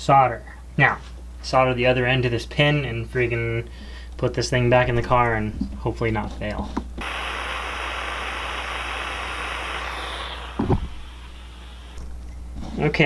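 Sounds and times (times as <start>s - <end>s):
heat gun blowing: 7.0s - 12.0s
fan winding down: 7.0s - 12.3s.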